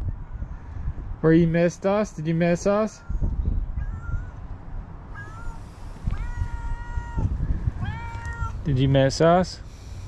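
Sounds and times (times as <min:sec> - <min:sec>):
cat meowing: 0:03.0 - 0:08.7.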